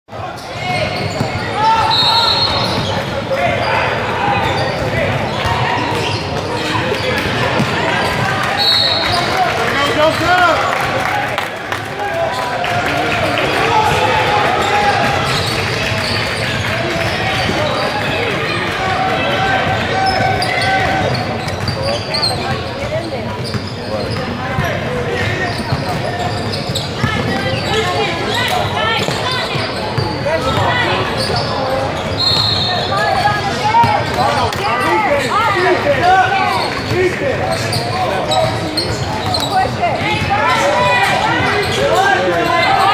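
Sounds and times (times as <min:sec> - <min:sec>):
people shouting and talking: 0:00.1 - 0:42.9.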